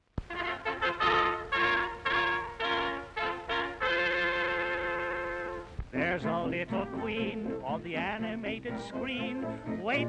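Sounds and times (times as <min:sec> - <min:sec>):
brass fanfare: 0:00.3 - 0:07.7.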